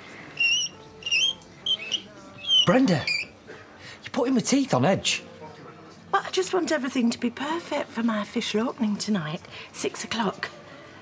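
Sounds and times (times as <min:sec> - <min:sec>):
chalk squeaking on blackboard: 0:00.4 - 0:03.3.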